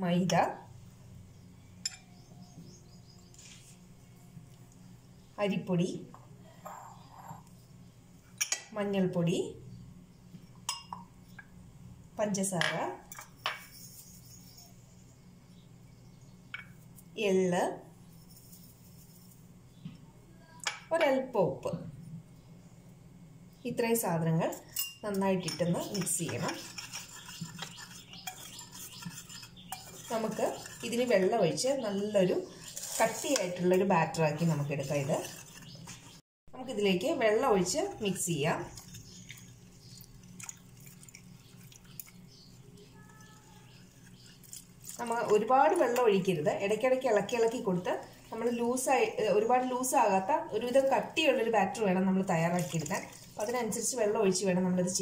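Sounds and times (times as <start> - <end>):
whisk stirring flour: 25.8 - 36.2, 38.8 - 46.0, 52.3 - 53.8.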